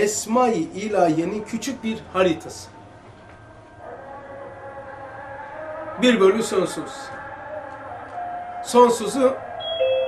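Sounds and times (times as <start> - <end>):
faint steady multi-pitch tone: 9.6 - 10.0.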